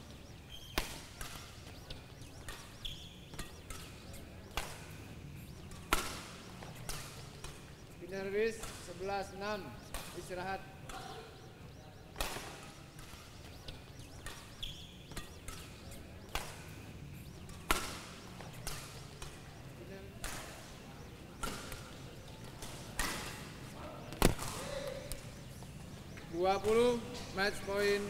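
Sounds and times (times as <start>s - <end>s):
rackets hitting shuttlecock: 0.0s - 28.0s.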